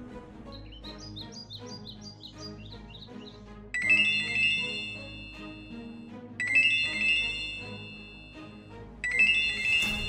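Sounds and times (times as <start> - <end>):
birds chirping: 0.0 - 10.0
soft background music: 0.0 - 10.0
mobile phone ringtone: 3.8 - 10.0.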